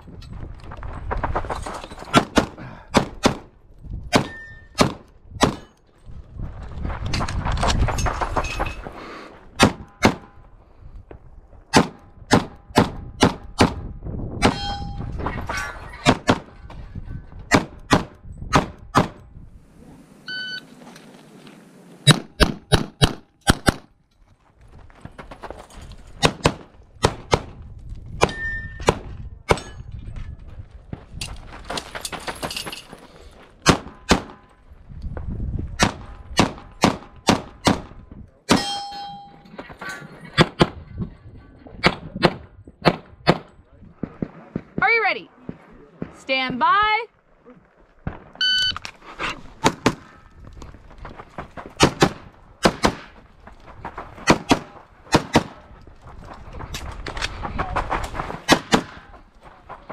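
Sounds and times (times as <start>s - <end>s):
pistol shots: 22.1s - 23.9s, 51.8s - 53.1s, 54.2s - 55.6s, 58.4s - 59.1s
steel targets ringing: 38.5s - 39.5s.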